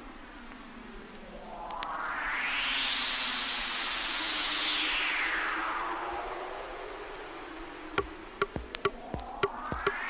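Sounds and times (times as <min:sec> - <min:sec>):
clicky percussion hits with blips: 0:08.0 - 0:10.0.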